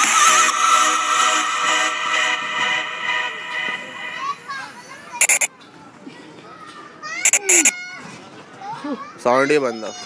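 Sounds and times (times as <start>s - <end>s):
high-pitched squeals: 0.0s - 5.5s, 7.2s - 7.7s
children playing and calling out: 4.0s - 10.0s.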